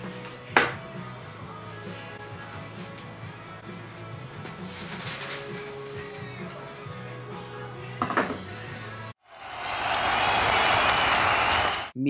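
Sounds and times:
background music: 0.0 - 11.8
crowd applauding and cheering: 9.2 - 12.0.

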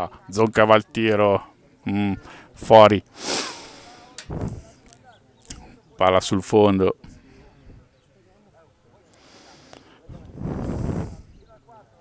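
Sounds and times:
breathy rush on microphone: 3.1 - 4.8, 9.2 - 11.4.

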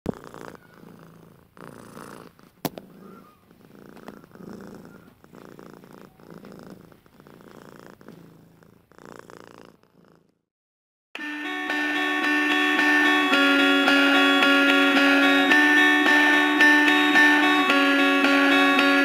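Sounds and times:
cat purring: 0.1 - 10.5.

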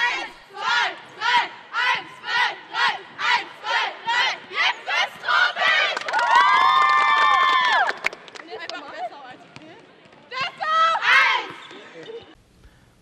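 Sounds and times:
girls chanting rhythmic shouts: 0.0 - 6.2, 10.4 - 11.6
girls cheering together: 6.0 - 8.0.

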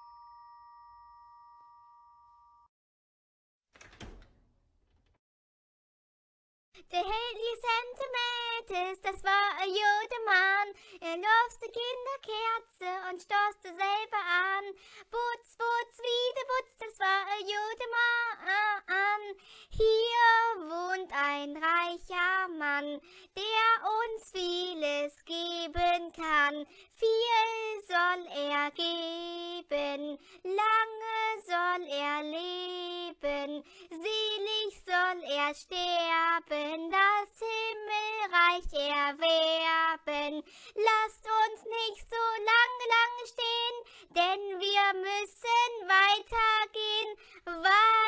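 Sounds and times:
two-tone doorbell chime: 0.0 - 2.7
child singing unaccompanied: 6.8 - 48.0.

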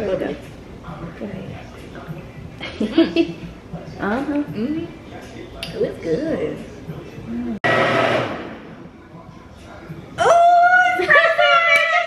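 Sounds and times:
countertop blender running: 7.7 - 8.7.

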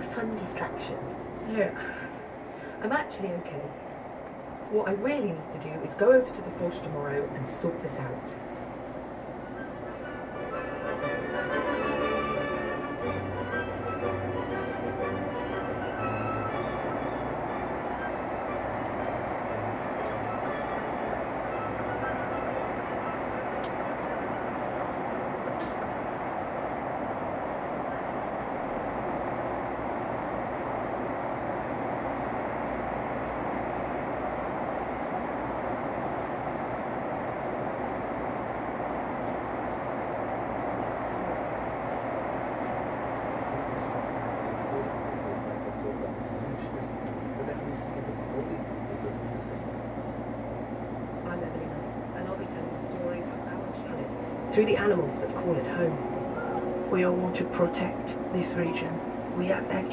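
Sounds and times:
road and tyre noise in car: 0.0 - 59.9.

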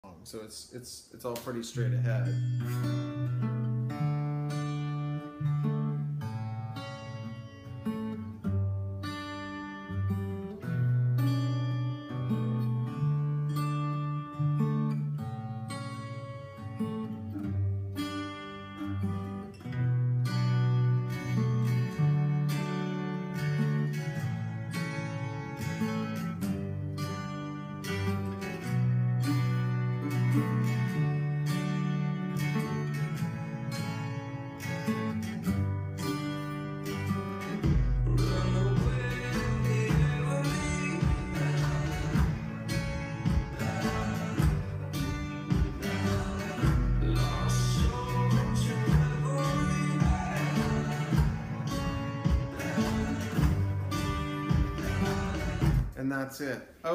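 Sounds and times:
acoustic guitar chords: 1.1 - 56.9.

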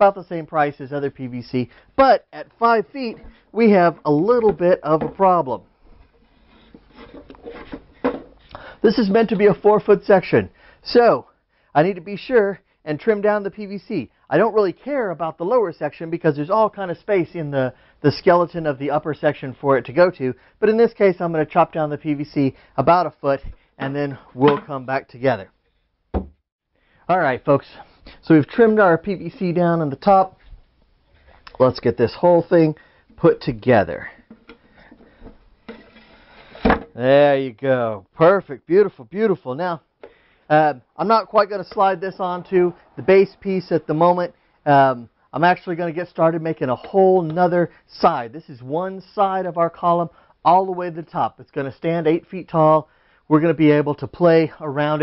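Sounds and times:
man speaking: 0.0 - 5.6, 8.6 - 25.5, 27.1 - 30.4, 31.5 - 34.3, 37.0 - 39.8, 40.5 - 55.0
wooden frames knocking and rubbing: 3.0 - 8.5, 34.1 - 37.0
wood scraping over pipe: 5.8 - 8.5, 34.0 - 37.0
wooden frame knock: 26.1 - 26.4.

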